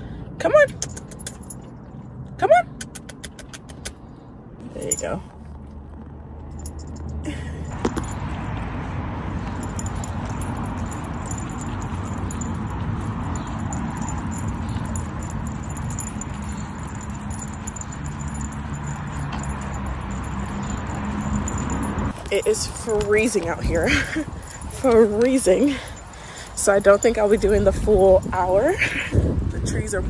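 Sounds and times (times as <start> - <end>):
light metallic jingling: 0.5 - 2.2, 4.6 - 5.5, 6.4 - 30.0
wind on microphone: 27.0 - 30.0.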